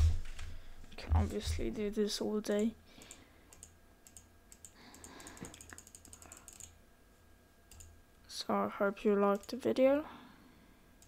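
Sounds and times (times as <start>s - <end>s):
low steady hum: 0.0s - 11.0s
computer keyboard keystrokes: 2.6s - 6.8s, 7.7s - 7.9s.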